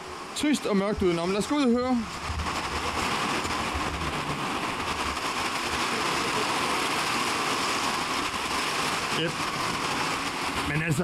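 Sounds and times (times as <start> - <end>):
heavy rain on roof panels: 0.0 - 11.0.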